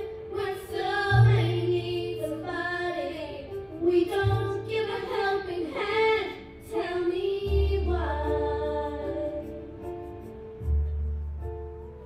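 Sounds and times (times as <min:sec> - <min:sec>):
musical accompaniment: 0:00.0 - 0:12.0.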